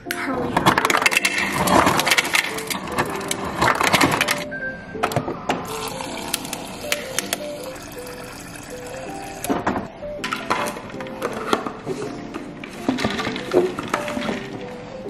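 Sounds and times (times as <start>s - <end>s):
background music: 0.0s - 15.0s
ice cubes clattering into tumbler: 0.6s - 4.5s, 5.7s - 9.5s
water running into cup: 5.7s - 9.6s.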